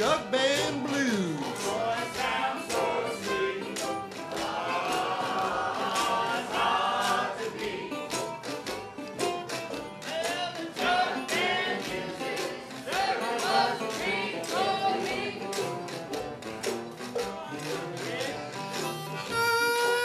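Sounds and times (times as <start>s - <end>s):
jug band playing: 0.0s - 20.0s.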